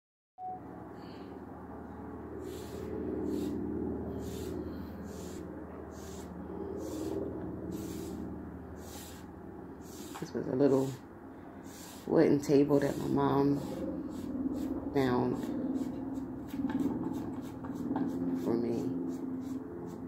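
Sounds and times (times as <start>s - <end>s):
steady low hum: 0.4s - 20.0s
paintbrush swishing on wood: 2.4s - 11.0s, 11.6s - 20.0s.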